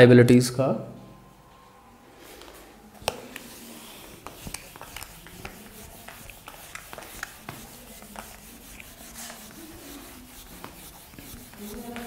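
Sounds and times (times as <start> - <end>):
eraser wiping whiteboard: 3.0 - 12.0.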